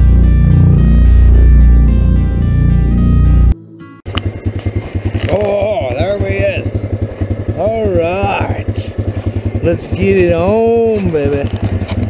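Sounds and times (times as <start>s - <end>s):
atv engine running: 4.1s - 12.0s.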